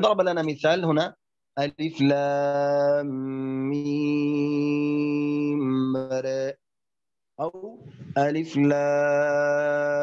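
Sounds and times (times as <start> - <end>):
man reciting in chant: 0.0 - 6.6, 7.4 - 10.0.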